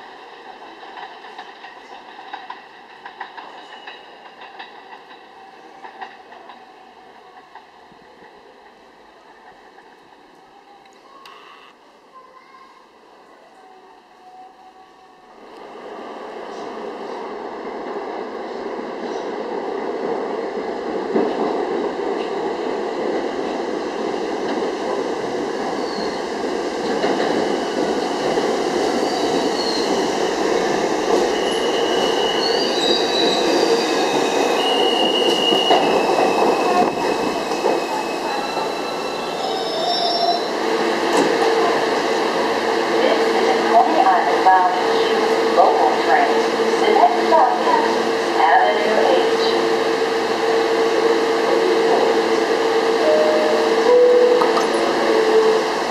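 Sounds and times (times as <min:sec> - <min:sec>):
subway train running on rails: 0:00.0 - 0:55.9
high wheel squeals: 0:31.2 - 0:40.5.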